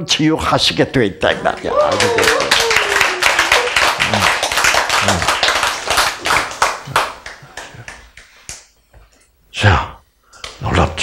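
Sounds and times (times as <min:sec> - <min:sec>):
audience clapping: 0:01.3 - 0:08.8.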